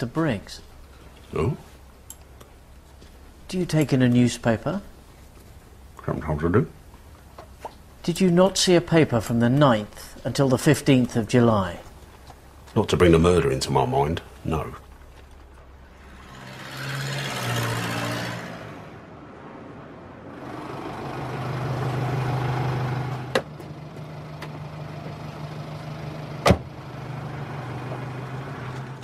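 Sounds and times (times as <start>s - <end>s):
steady low engine hum: 0.0s - 16.4s, 20.4s - 29.0s
vehicles passing by: 0.0s - 29.0s.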